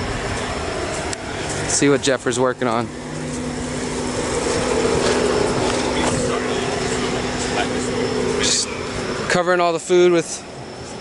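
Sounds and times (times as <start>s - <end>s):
mechanical hum: 0.0s - 11.0s.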